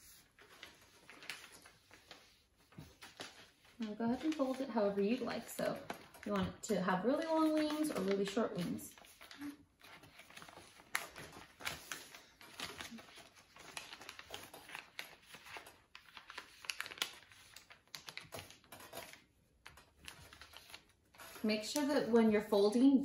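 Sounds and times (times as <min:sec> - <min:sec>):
paper rustling and crinkling: 0:00.0 - 0:22.5.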